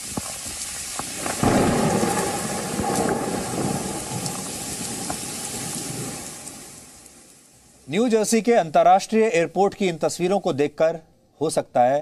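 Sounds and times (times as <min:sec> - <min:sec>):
heavy rain on flooded street: 0:00.0 - 0:07.7.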